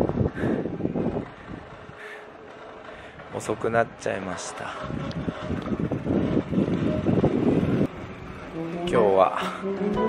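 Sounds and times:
wind buffeting microphone: 0.0s - 9.2s.

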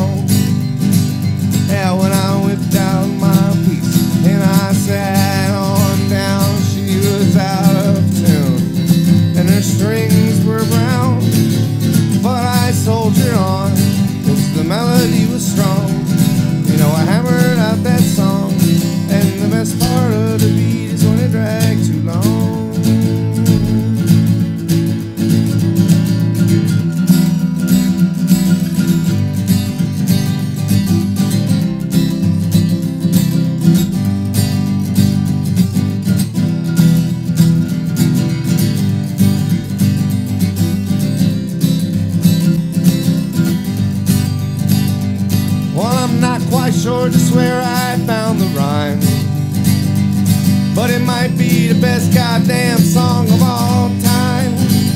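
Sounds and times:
acoustic guitar strumming: 0.0s - 54.9s.

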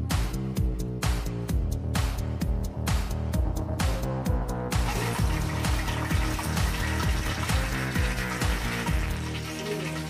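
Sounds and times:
background music with steady beat: 0.0s - 10.0s
chicken frying in hot oil: 4.8s - 10.0s.

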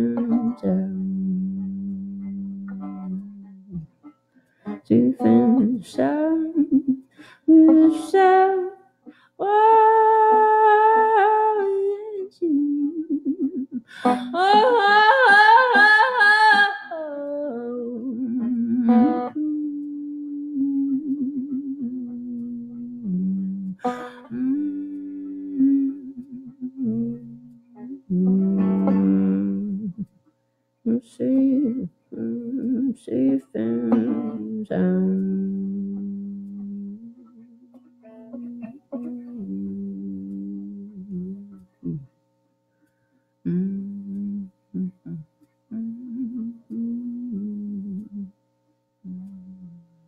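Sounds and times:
plucked guitar notes and chords: 0.0s - 6.9s, 7.5s - 8.8s, 17.7s - 30.1s, 30.9s - 42.0s.

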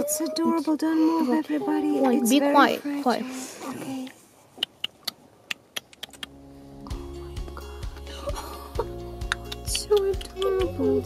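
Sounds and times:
soft background music: 6.2s - 11.0s.

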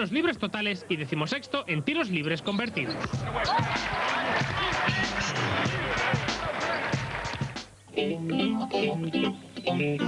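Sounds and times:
arena crowd din: 2.6s - 7.8s
music: 3.0s - 10.0s.

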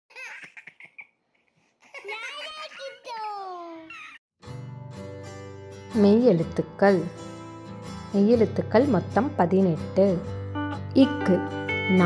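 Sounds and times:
young child laughing: 1.8s - 4.2s.

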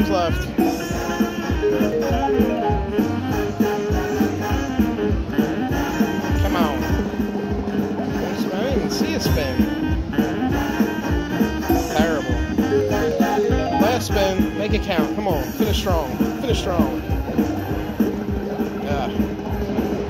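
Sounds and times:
sliding-pitch sound effects: 1.6s - 3.1s, 11.9s - 14.2s
slot machine game music: 1.6s - 3.2s, 11.9s - 14.5s.

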